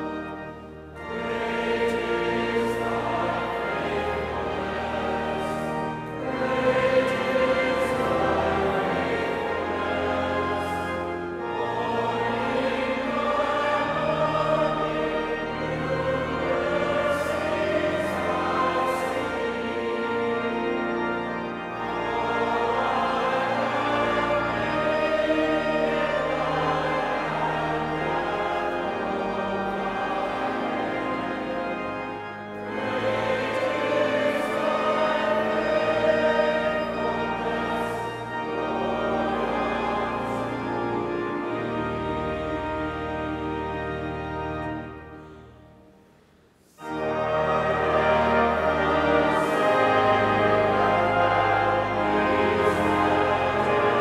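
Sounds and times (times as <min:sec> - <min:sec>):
choir singing long notes: 0:00.0 - 0:54.0.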